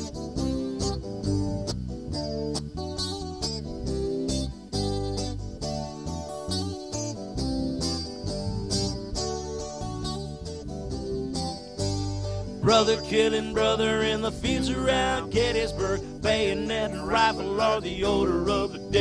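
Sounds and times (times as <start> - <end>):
guitars playing picked notes: 0.0 - 19.0
low bass line: 0.0 - 19.0.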